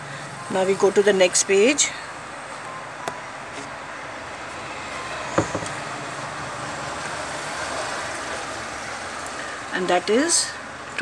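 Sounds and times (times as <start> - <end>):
steady background noise: 0.0 - 11.0.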